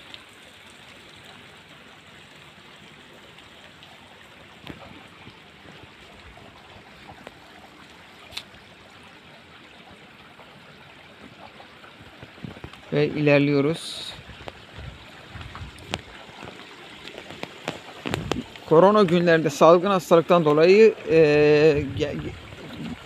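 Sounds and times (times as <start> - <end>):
faint running water: 0.0 - 23.0.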